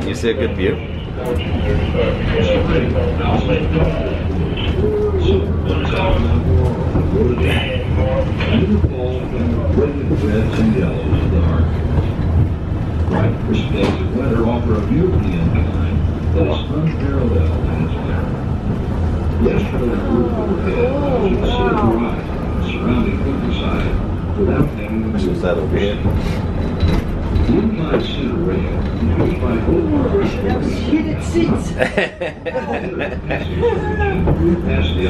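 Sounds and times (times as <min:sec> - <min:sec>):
people talking: 0:00.0 - 0:12.4, 0:13.1 - 0:18.4, 0:19.3 - 0:35.0
railway car running rumble: 0:00.0 - 0:35.0.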